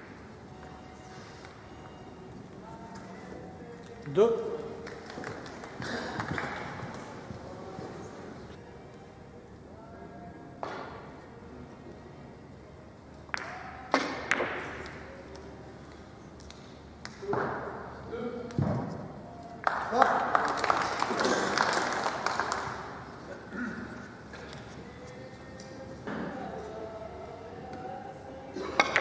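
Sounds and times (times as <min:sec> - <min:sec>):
audience applause: 0:04.8 - 0:07.2, 0:19.6 - 0:23.2.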